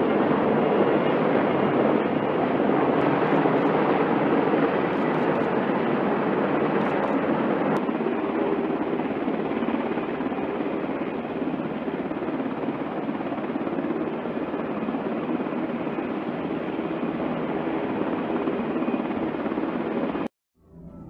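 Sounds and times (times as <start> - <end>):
helicopter rotor and turbine noise: 0.0 - 21.0.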